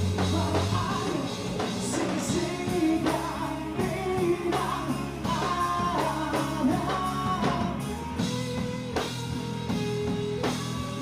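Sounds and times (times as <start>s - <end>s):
man singing lead vocal: 0.0s - 8.6s
electric guitars: 0.0s - 11.0s
live rock band playing: 0.0s - 11.0s.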